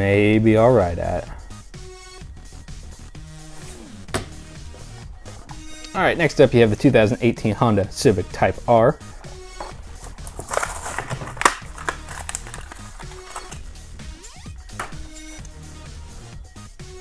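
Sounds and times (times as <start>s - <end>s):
quiet background music: 0.0s - 17.0s
plastic packaging tearing: 9.9s - 13.6s.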